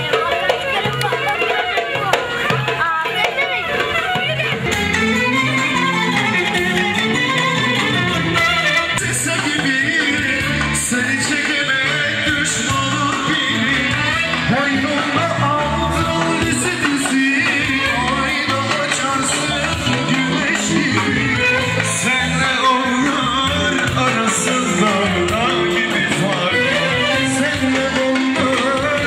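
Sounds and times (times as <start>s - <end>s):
band music with singer: 0.0s - 29.0s.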